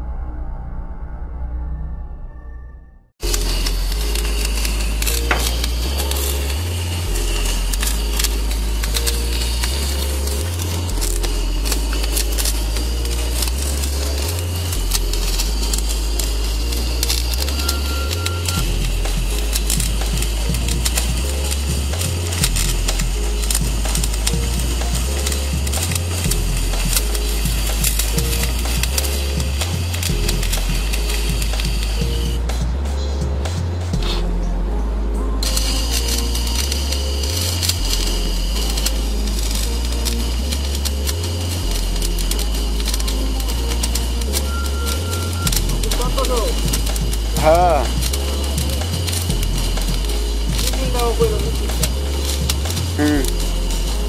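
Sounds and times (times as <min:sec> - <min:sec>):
arc welding crackling hiss: 0:03.2 - 0:34.6, 0:35.4 - 0:54.0
music with low bass line: 0:03.2 - 0:54.0.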